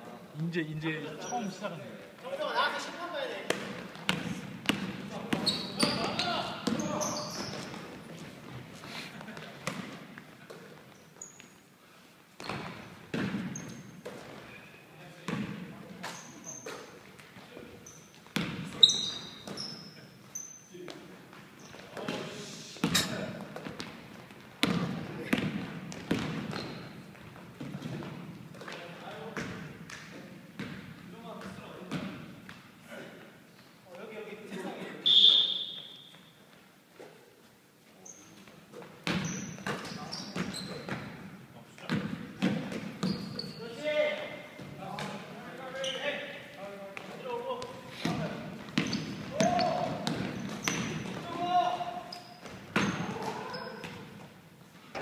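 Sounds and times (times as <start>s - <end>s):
basketball bouncing on gym floor: 3.5s - 8.6s, 12.4s - 14.4s, 15.3s - 16.8s, 18.2s - 19.7s, 22.8s - 30.0s, 30.6s - 32.6s, 39.0s - 43.5s, 47.0s - 51.2s, 52.3s - 54.2s
short high squeaks: 5.4s - 6.2s, 6.8s - 7.8s, 16.1s - 16.9s, 18.8s - 20.7s, 39.2s - 40.9s, 43.0s - 43.8s, 52.0s - 53.8s.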